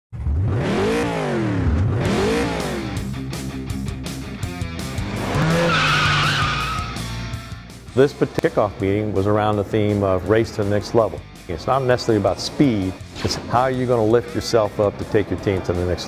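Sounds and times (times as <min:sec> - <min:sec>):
race car engines revving: 0:00.2 - 0:03.5, 0:04.4 - 0:07.7
music: 0:01.6 - 0:16.0
tires squealing: 0:04.8 - 0:07.5.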